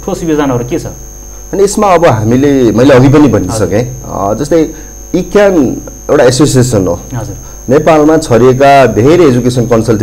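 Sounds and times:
man speaking: 0:00.0 - 0:10.0
steady mains hum: 0:00.0 - 0:10.0.

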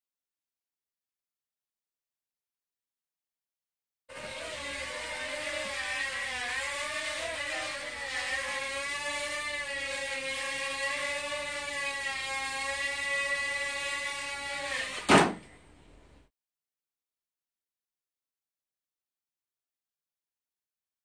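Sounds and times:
quadcopter propellers whirring: 0:04.1 - 0:15.1.

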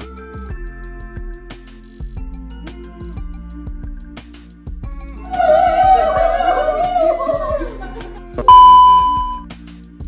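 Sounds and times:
electronic beep: 0:08.4 - 0:09.4.

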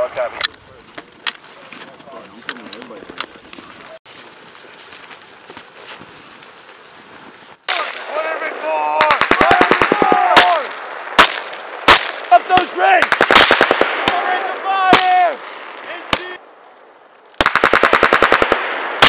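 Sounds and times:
men shouting: 0:07.8 - 0:10.7, 0:14.1 - 0:16.4
automatic rifle fire: 0:09.0 - 0:12.3, 0:13.0 - 0:14.3, 0:17.4 - 0:19.0.

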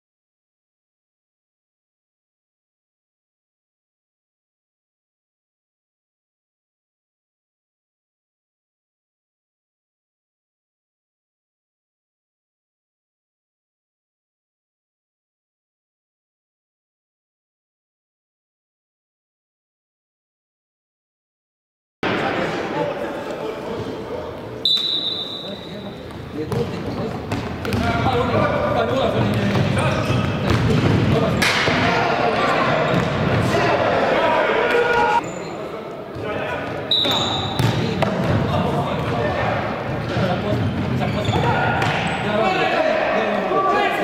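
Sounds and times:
referee's whistle: 0:24.6 - 0:25.9, 0:36.9 - 0:37.6
players shouting: 0:31.4 - 0:35.2, 0:41.2 - 0:44.0.

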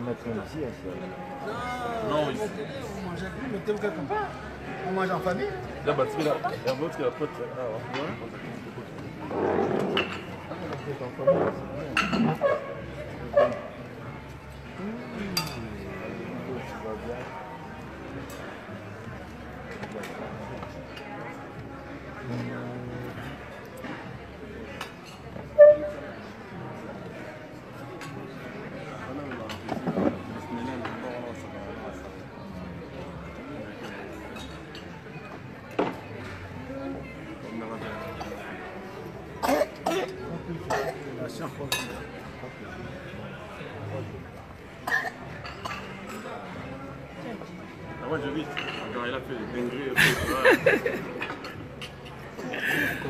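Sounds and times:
low background talk: 0:00.0 - 0:53.0.

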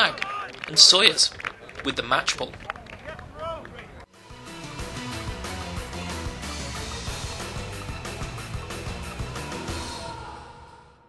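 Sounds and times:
tv ident music with beat: 0:04.2 - 0:10.3.

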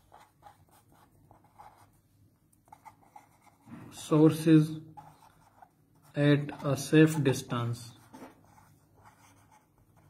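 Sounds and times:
pen scratching on paper: 0:00.0 - 0:02.0, 0:02.6 - 0:10.0.

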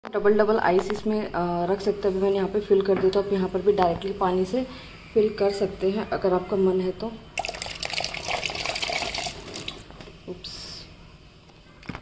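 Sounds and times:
water pouring and splashing: 0:07.4 - 0:09.8
water trickle: 0:07.4 - 0:09.8.

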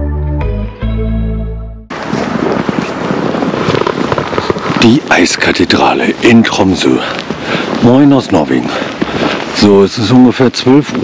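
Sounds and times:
dense irregular crackling: 0:01.9 - 0:11.0
wind buffeting microphone: 0:01.9 - 0:11.0.

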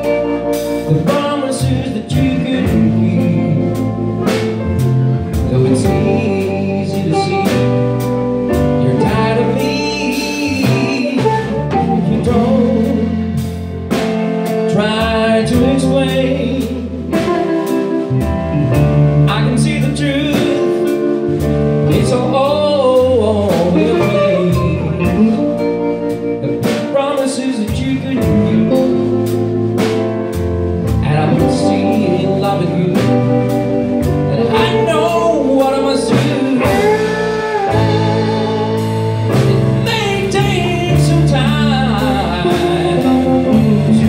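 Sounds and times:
man singing: 0:00.0 - 0:30.1, 0:30.7 - 0:44.0
bass guitar: 0:00.0 - 0:44.0
blues band playing: 0:00.0 - 0:44.0
drum kit: 0:00.0 - 0:44.0
electric guitar: 0:00.0 - 0:44.0
keyboard: 0:00.0 - 0:44.0.

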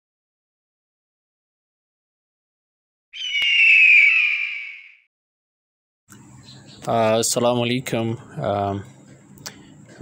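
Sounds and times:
hoarse high screech tone: 0:03.2 - 0:05.1.

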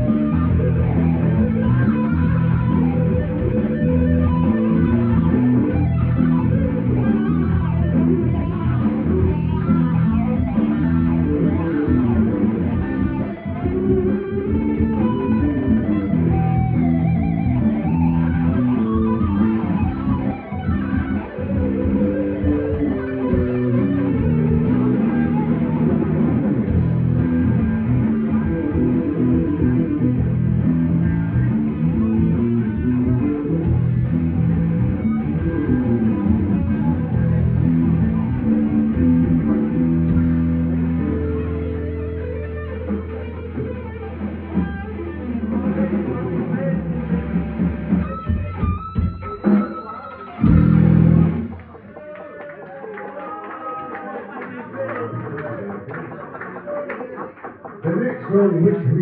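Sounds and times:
bass guitar: 0:00.0 - 0:52.3
drums: 0:00.0 - 0:52.6
electric guitar: 0:00.0 - 0:56.6.

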